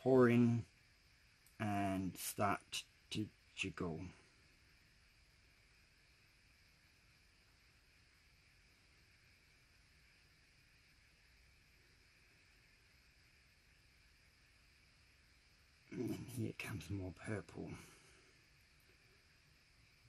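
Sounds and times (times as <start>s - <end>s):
faint background hiss: 0.0s - 20.0s.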